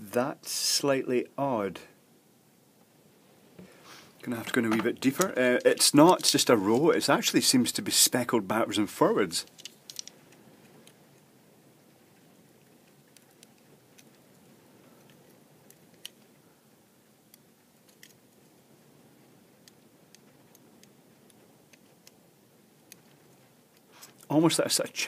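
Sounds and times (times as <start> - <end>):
small crunchy clicks: 9.4 - 11.3, 12.2 - 16.4, 17.3 - 18.2, 19.6 - 24.3.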